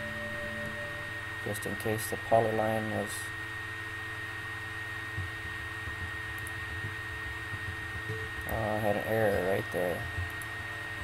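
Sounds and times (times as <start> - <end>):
electrical hum and hiss: 0.0 - 11.0
thin high whine: 0.0 - 11.0.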